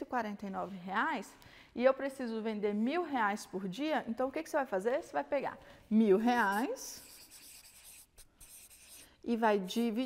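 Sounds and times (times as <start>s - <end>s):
marker scratching on paper: 6.2s - 10.0s.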